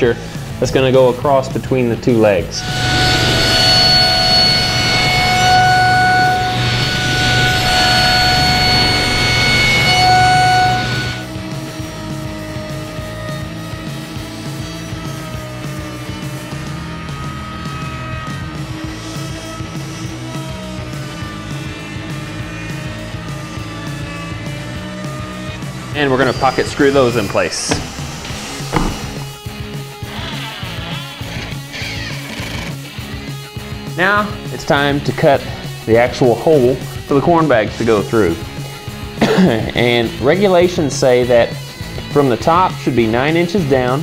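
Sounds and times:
table saw cutting board: 2.6 - 11.3, 25.8 - 29.5.

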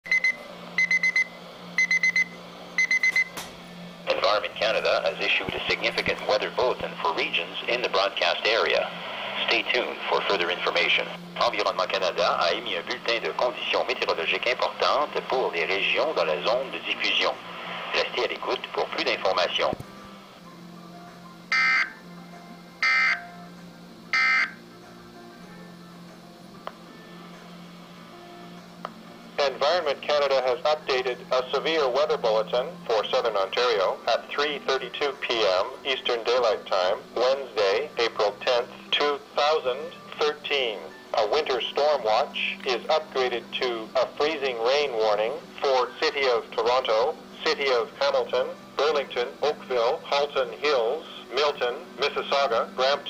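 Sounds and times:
weather radio alarm beeps: 0.1 - 3.4, 21.5 - 22.0, 22.8 - 23.3, 24.1 - 24.6
faint hum: 0.1 - 52.8.

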